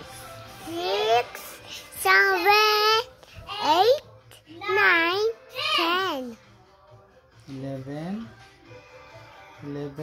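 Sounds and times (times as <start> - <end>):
girl singing: 0.5 - 6.5.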